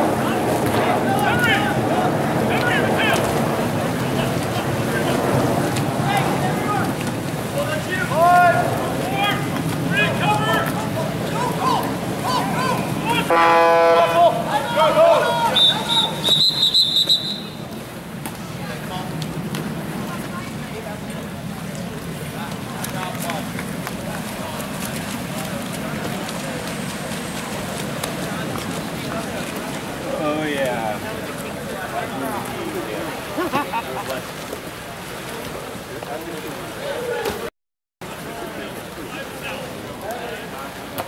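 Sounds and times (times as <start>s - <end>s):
water splashing: 0.0s - 41.0s
people shouting: 7.8s - 16.4s
short horn blast: 13.2s - 14.4s
referee's whistle blast: 15.5s - 17.6s.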